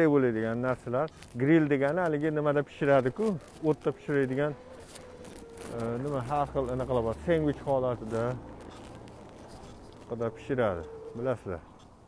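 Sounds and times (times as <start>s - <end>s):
person talking: 0.0s - 4.7s, 5.7s - 8.5s, 10.0s - 11.7s.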